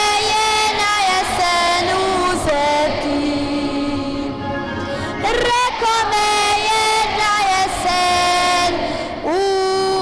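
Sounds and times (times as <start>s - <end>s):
boy singing into a microphone: 0.0s - 4.3s, 5.2s - 10.0s.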